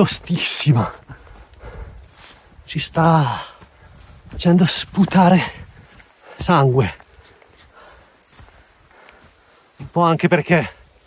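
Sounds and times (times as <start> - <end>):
footsteps on grass: 0.0 - 11.0
hard breathing: 0.7 - 4.3, 5.3 - 9.9.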